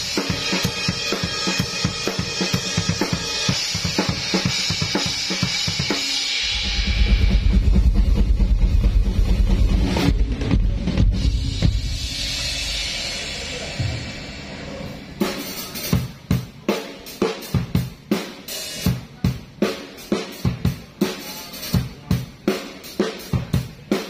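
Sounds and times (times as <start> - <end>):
cymbal crashes: 0.0 - 16.0
fast bass drum strokes: 0.0 - 23.9
drum kit played hard: 0.0 - 24.0.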